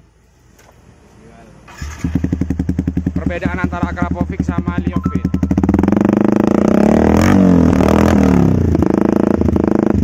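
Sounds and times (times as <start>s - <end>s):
motorcycle engine idling: 1.4s - 7.8s.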